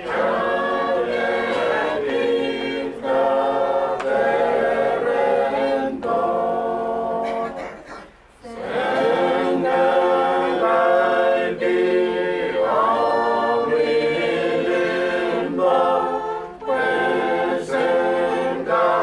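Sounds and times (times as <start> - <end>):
choir singing a hymn: 0.0 - 19.0.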